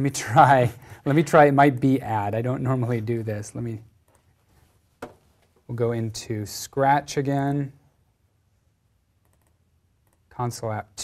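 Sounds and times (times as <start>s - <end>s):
faint computer mouse clicks: 9.2s - 10.3s.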